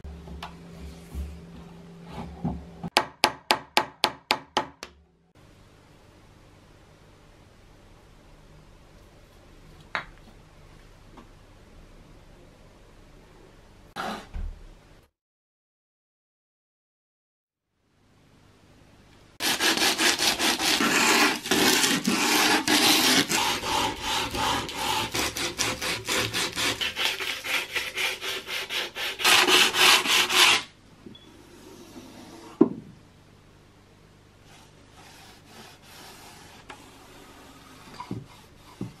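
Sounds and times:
sandpaper rubbing on wood: 19.4 - 30.7.

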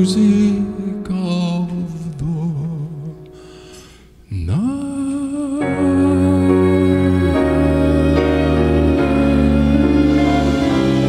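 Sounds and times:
man singing with vibrato: 0.0 - 11.0
acoustic band playing: 5.6 - 11.0.

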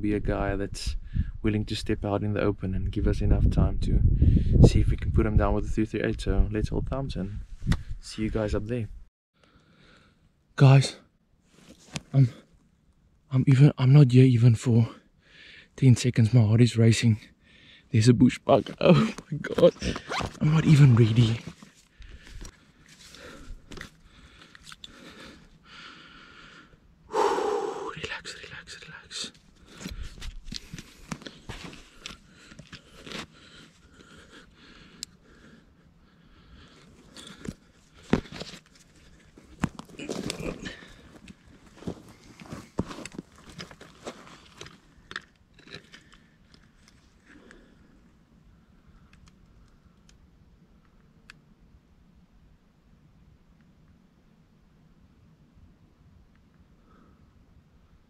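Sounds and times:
gear rustling on dry brush: 36.8 - 44.8.

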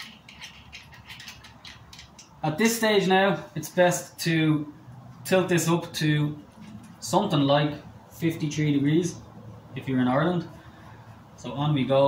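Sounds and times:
screw clicking as turned: 0.0 - 2.4.

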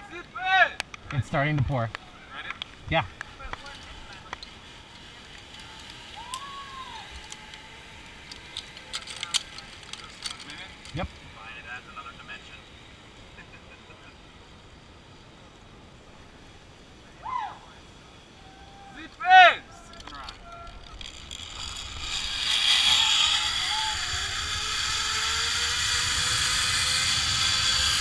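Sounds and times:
zip-line trolley hissing on cable: 3.2 - 28.0
rising-and-falling call: 5.5 - 7.8, 18.3 - 28.0.

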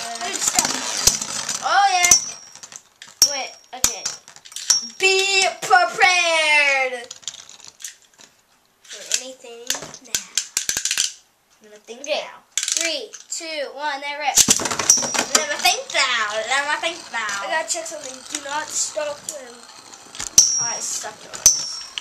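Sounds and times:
child's wordless voice: 0.0 - 1.0, 1.6 - 2.3, 4.8 - 7.1, 8.9 - 10.4, 11.6 - 14.4, 15.2 - 19.8, 20.6 - 21.4
spinning top clattering: 0.0 - 5.5, 8.9 - 11.2, 14.4 - 22.0
spinning tops clicking together: 10.1 - 11.2, 14.4 - 22.0.

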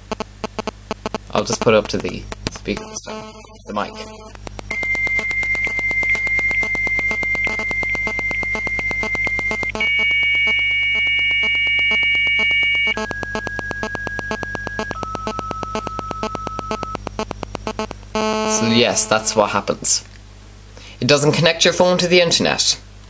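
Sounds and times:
modem handshake tones over phone: 0.0 - 19.4
fast regular buzz: 0.0 - 19.8.

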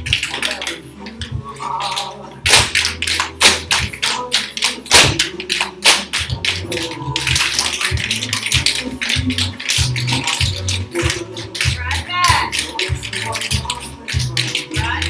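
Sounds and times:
recorded song with bass: 0.0 - 15.0
tap shoes on hard floor: 2.5 - 15.0.

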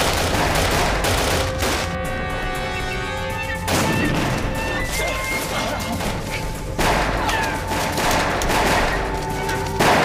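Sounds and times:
rapid overlapping gunshots: 0.0 - 2.0, 6.8 - 9.1.

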